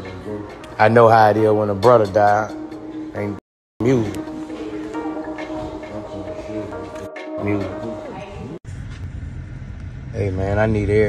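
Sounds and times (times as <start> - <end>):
song with falling tones: 0.0 - 8.6.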